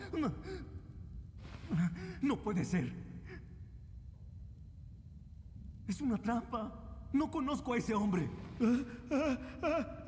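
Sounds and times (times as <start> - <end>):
man speaking: 1.6 - 3.1, 5.9 - 8.9.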